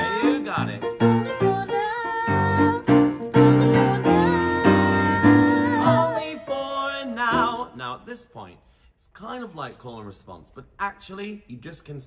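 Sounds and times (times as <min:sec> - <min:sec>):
piano chords: 0:00.0 - 0:08.0.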